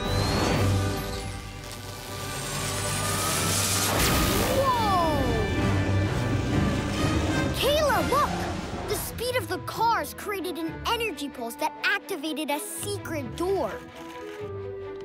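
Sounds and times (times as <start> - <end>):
background music: 0.0 - 15.0
electric zapping glides: 0.3 - 7.6.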